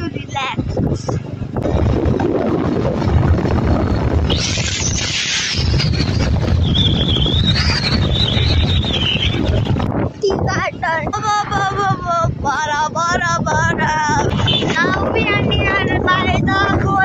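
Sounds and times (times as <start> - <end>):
wind buffeting microphone: 0.0 - 17.0
voices: 10.2 - 17.0.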